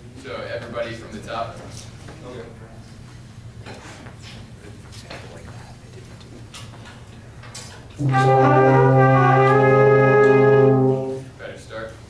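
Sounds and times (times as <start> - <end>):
steady low hum: 1.4 - 12.0.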